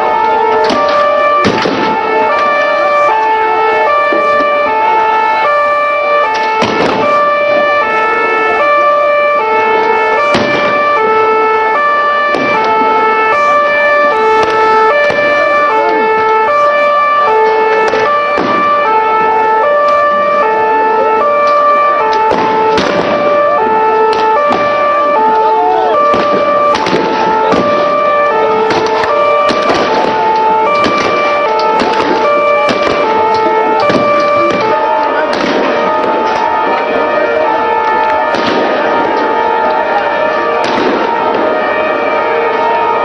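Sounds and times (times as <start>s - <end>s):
sharp bangs: 0.0s - 43.0s
two-tone siren: 0.0s - 43.0s.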